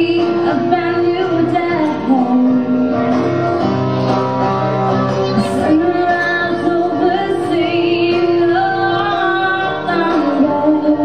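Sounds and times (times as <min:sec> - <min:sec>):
person singing: 0:00.0 - 0:03.4, 0:05.2 - 0:11.0
live guitar-led band playing: 0:00.0 - 0:11.0.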